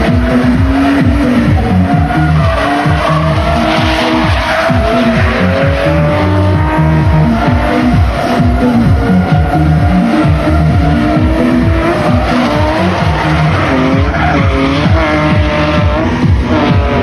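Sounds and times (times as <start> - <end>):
car engines running hard: 0.0 - 17.0
electronic music with steady beat: 0.0 - 17.0
tyres squealing: 0.1 - 15.6.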